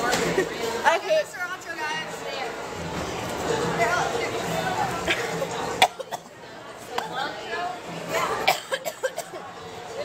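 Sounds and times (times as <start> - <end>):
person coughing: 8.5 - 9.4.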